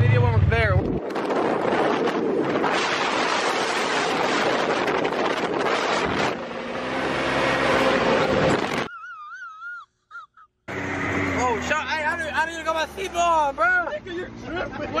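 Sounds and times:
engine drone: 0.0s - 8.9s, 10.7s - 14.8s
wind rushing over microphone: 0.0s - 8.9s.

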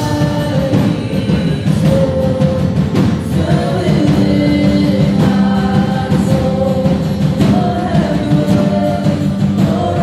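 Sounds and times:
guitars: 0.0s - 10.0s
voices singing held notes: 0.0s - 10.0s.

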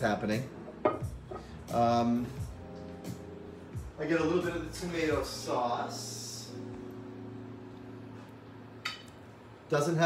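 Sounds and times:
faint steady hum: 0.0s - 10.0s
metal spoon clinking on dishware: 8.8s - 9.1s.

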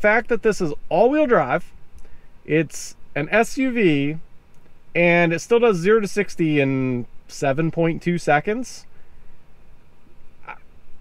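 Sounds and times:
faint low hum: 0.0s - 11.0s
short intake of breath: 2.0s - 2.4s.

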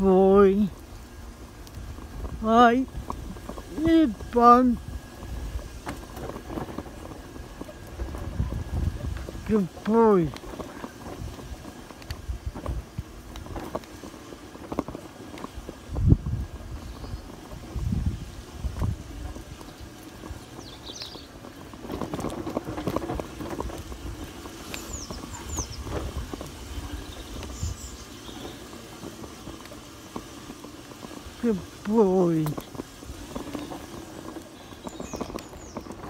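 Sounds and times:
rustling: 0.0s - 36.0s
small birds chirping: 16.4s - 18.1s, 19.0s - 36.0s.

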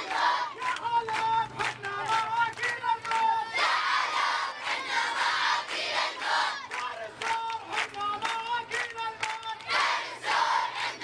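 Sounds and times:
crowd chanting in unison: 0.0s - 0.7s, 3.3s - 7.1s, 9.5s - 11.0s
crowd clapping: 0.0s - 11.0s.

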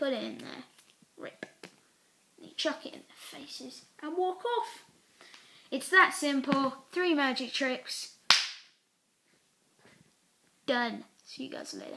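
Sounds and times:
hand smack: 8.3s - 8.7s.

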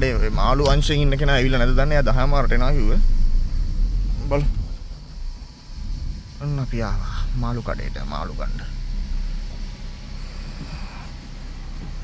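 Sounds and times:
car engine and tyres rumble: 0.0s - 12.0s.

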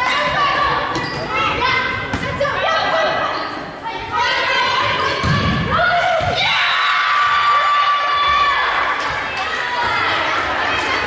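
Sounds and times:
girls calling and shouting: 0.0s - 11.0s.

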